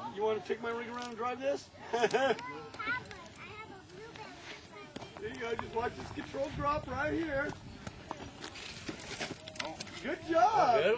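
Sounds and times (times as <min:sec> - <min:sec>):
toy crawler tyres clicking on rock: 0:00.8 - 0:01.2, 0:07.4 - 0:10.2.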